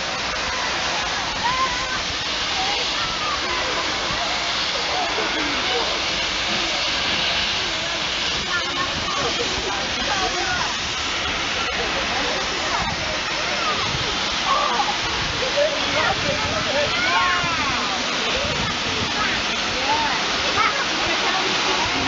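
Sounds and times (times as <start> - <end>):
train carriages rumbling past: 0.0 - 22.0.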